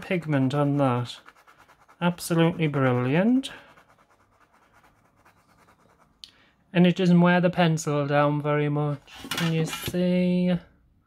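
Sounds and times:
faint pencil scratching: 0.0s - 6.2s.

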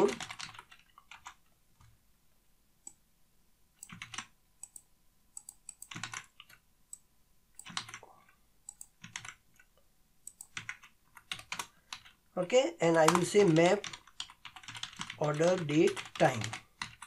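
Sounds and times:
computer keyboard typing: 0.0s - 2.0s, 3.8s - 7.0s, 7.6s - 12.2s, 12.8s - 17.0s.

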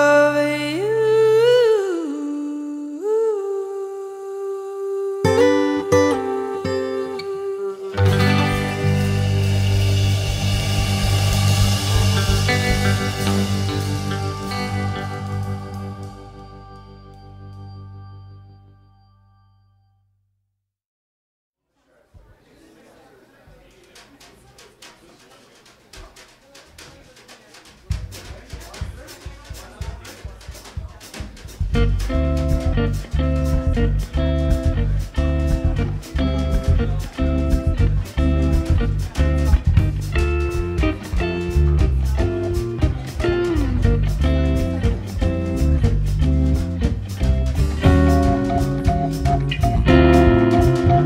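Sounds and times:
woman humming: 0.0s - 8.7s
sustained low backing: 8.0s - 19.4s, 21.9s - 51.0s
faint low tones: 8.0s - 20.2s
light percussion strokes: 8.2s - 18.3s.

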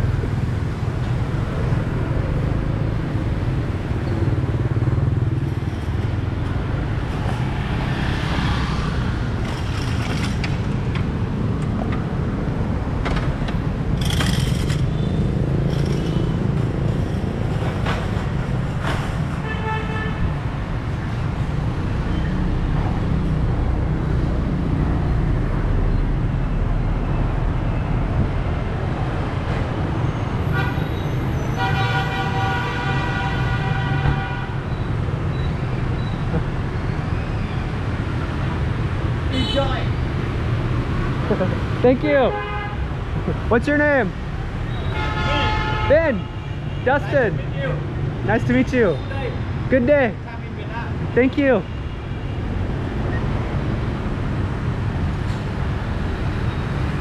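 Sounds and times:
motorbikes and cars passing: 0.0s - 57.0s
horn toot: 30.5s - 34.6s, 44.8s - 46.3s.

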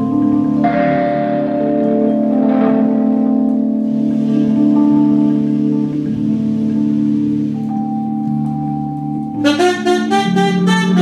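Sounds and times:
electric keyboard: 0.0s - 11.0s
fretless electric bass: 0.0s - 11.0s
saxophone: 3.8s - 11.0s.

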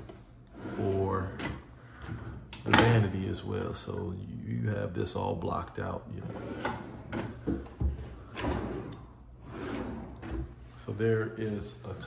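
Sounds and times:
drawer sliding open: 6.2s - 10.6s.

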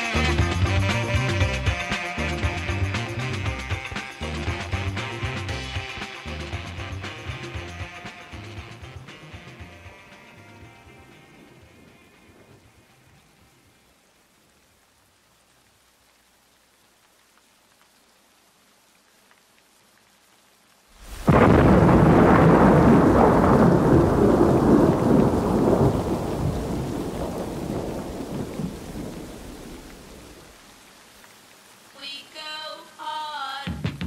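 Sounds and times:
faint rain hiss: 0.0s - 34.0s
rolling thunderclap: 21.0s - 30.6s.

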